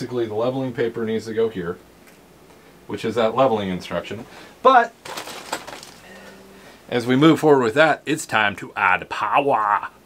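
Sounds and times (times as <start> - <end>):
faint low hum: 0.0 - 10.0
handling rustles and clicks: 5.0 - 6.3.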